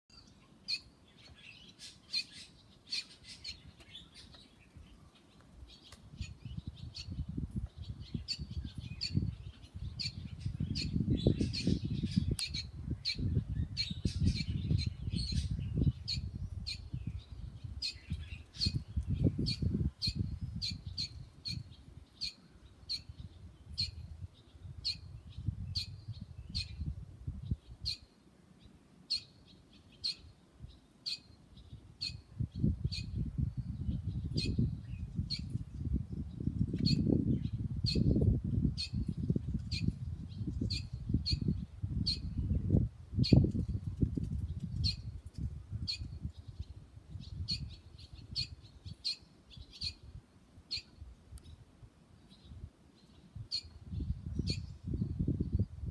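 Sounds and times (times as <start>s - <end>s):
swallows chirping: 7.8s - 24.0s, 45.8s - 50.1s, 52.2s - 55.6s.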